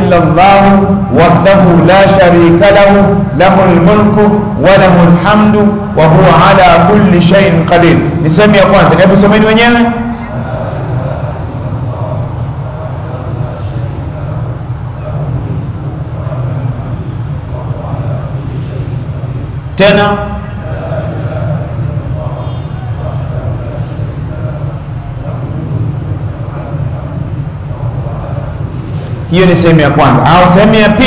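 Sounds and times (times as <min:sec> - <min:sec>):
low background rumble: 0:01.0 - 0:30.7.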